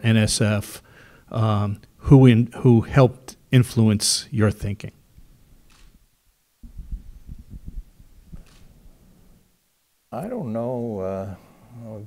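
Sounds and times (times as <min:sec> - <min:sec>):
microphone handling bumps: 0:06.6 - 0:09.0.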